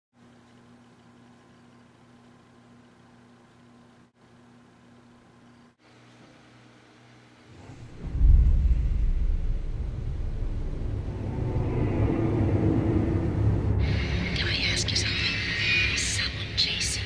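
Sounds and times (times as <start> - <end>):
low hum: 7.5 - 17.0
deep loud rumble: 7.6 - 15.3.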